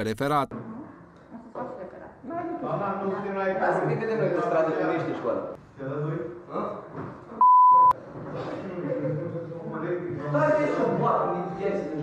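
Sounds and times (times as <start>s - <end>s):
people talking: 0.0s - 0.5s
censorship bleep: 7.4s - 8.0s.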